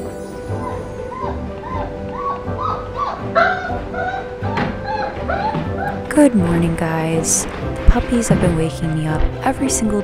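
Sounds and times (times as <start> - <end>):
background music with steady beat: 0.0 - 6.4
puppies whining: 0.3 - 6.1.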